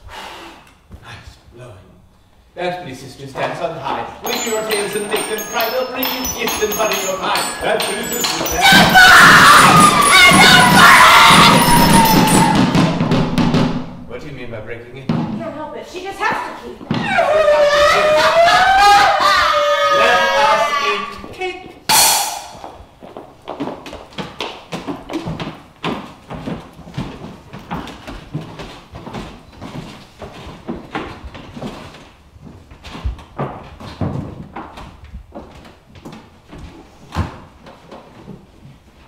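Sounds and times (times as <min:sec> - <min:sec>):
knocks and thuds on stage floor: 0:04.2 - 0:14.0
voices wailing and crying out: 0:04.3 - 0:13.0, 0:17.0 - 0:21.2.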